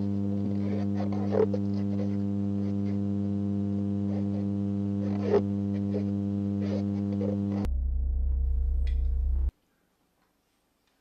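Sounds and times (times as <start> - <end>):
faint crackles: 0.0 - 7.7
low drone with overtones: 4.6 - 9.5.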